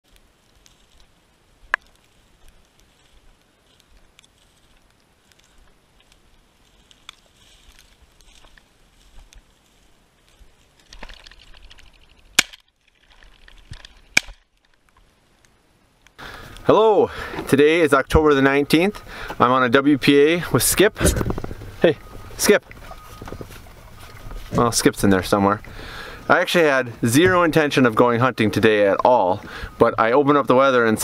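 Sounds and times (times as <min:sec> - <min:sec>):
footsteps through frosted grass: 0:00.0 - 0:15.4, 0:16.4 - 0:28.5
small ticks: 0:00.1 - 0:16.6.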